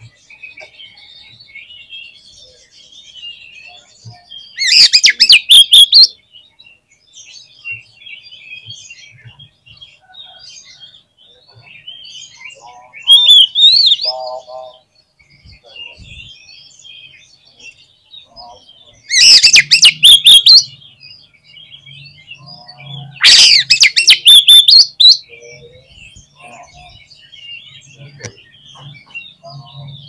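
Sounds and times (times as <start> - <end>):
bird chattering and warbling: 0.0 - 6.9, 7.5 - 30.0
loud whistled bird phrases: 3.2 - 6.2, 11.9 - 17.1, 18.2 - 20.9, 21.7 - 30.0.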